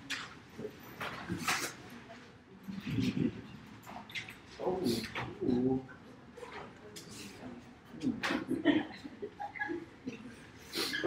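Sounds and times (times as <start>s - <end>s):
indistinct low voice murmuring: 2.5s - 3.7s.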